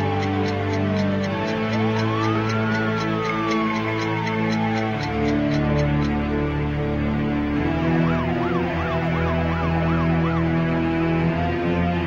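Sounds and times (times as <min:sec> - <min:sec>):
siren yelping: 0:00.0 - 0:06.3, 0:07.6 - 0:12.0
background music: 0:00.0 - 0:12.0.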